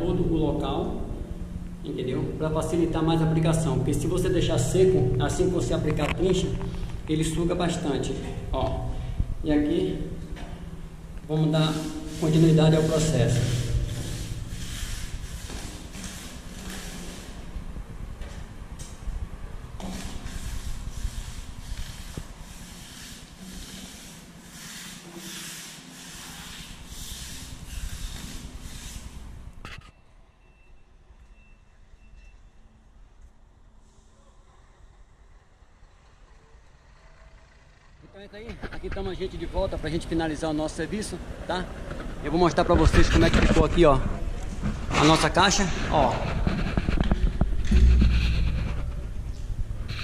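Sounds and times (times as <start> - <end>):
brush scrubbing masonry wall: 11.3 - 17.6, 19.8 - 29.4.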